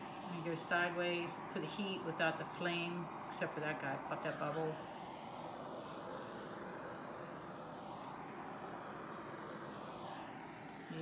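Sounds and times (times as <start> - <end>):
butane torch hissing: 0.0 - 11.0.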